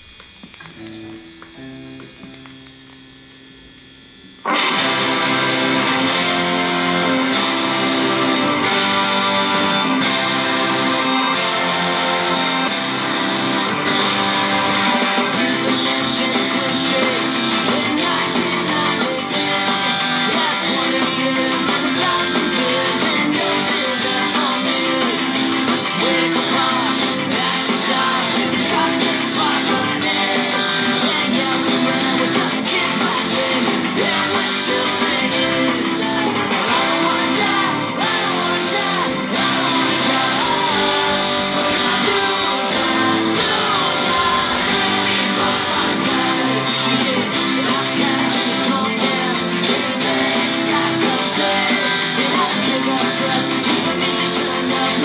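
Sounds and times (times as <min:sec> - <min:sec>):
electric guitar strummed: 0:00.0 - 0:55.0
full band recording: 0:04.3 - 0:55.0.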